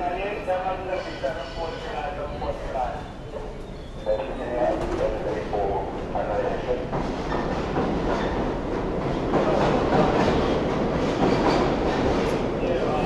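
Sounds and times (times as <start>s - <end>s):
subway train rumble and clatter: 0.0s - 13.0s.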